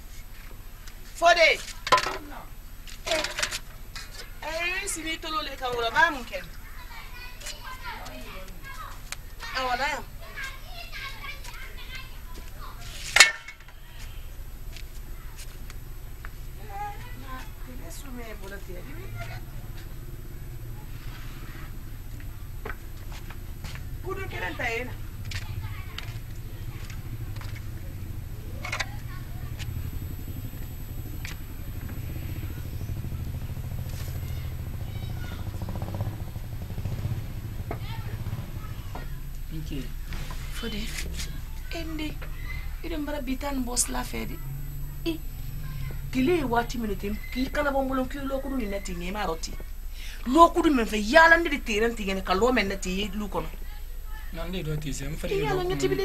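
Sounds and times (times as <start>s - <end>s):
distant voices talking and calling: 0.0s - 56.0s
small engine running: 0.0s - 56.0s.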